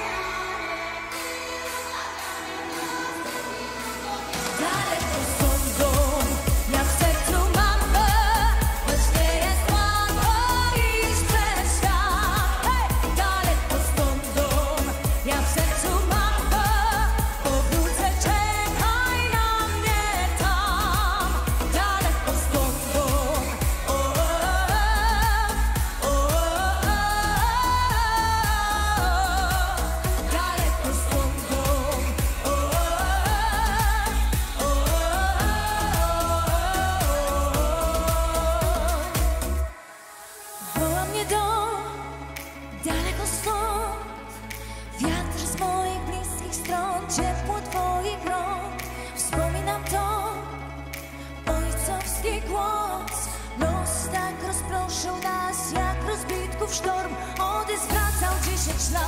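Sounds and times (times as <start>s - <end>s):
heavy bass beat: 0.0s - 39.7s
woman singing: 0.0s - 59.0s.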